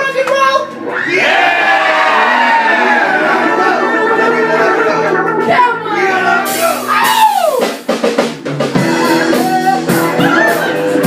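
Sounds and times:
crowd chatter: 1.1 - 7.4, 8.7 - 11.0.

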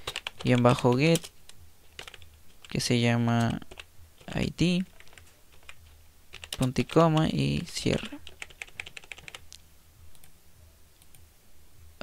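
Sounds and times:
computer keyboard typing: 0.0 - 1.3, 1.9 - 2.8, 3.4 - 7.4, 8.0 - 9.4.

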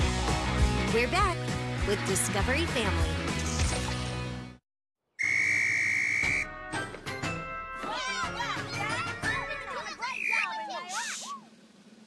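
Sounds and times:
long whistle blast: 5.2 - 6.5
light cartoon music: 6.4 - 10.1
cartoon sound effects: 9.2 - 11.4.

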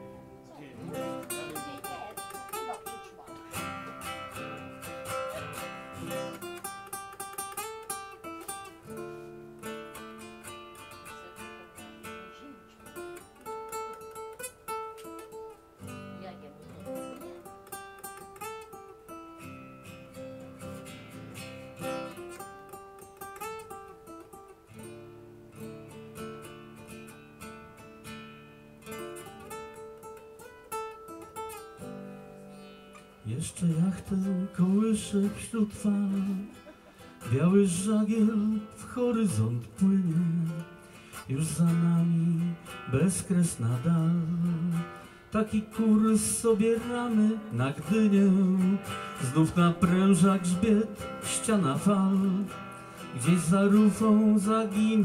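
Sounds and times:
acoustic guitar strummed and picked: 0.0 - 55.0.

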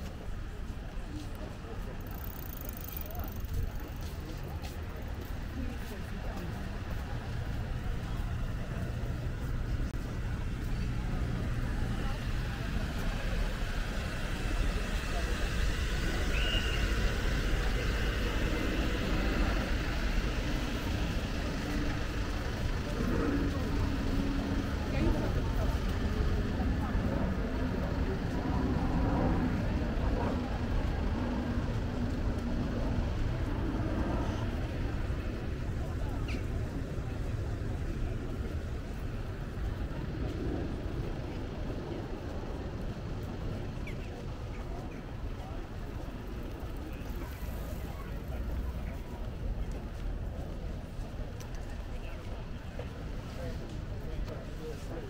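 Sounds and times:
passers-by talking: 0.0 - 55.0
steady low rumble: 0.0 - 55.0.

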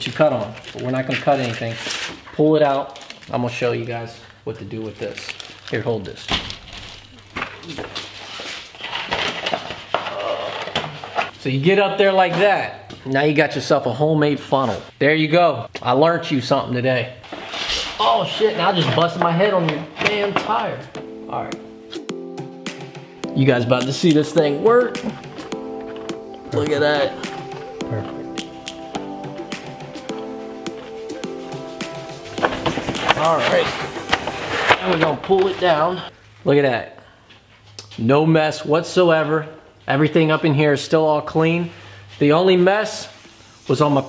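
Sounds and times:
plastic mat crackling: 0.0 - 3.6, 4.7 - 11.3, 31.5 - 36.1
held chords: 20.2 - 36.1.

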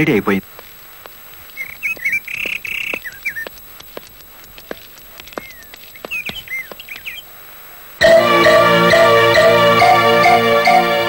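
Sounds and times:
birds chirping: 0.0 - 9.7.

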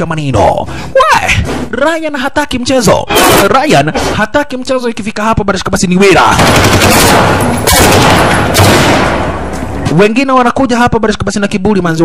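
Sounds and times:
automatic gunfire: 6.3 - 9.4.

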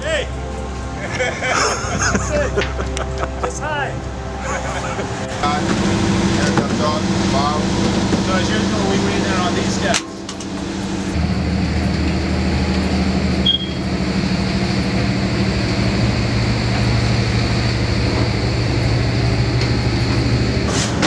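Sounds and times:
ship machinery drone: 0.0 - 21.0.

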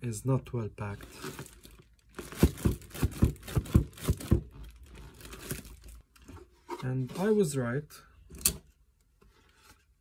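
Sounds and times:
plastic wrap crinkling: 0.9 - 6.2
plastic wrap tearing and crackling: 0.9 - 6.2.

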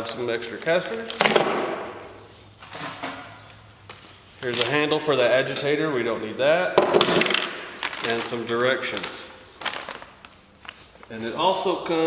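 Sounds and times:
plastic bag rustling and clattering: 6.8 - 11.2.

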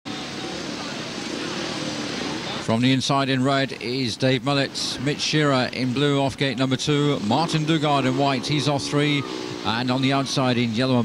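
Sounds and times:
motorcycle engines revving: 0.1 - 11.0.

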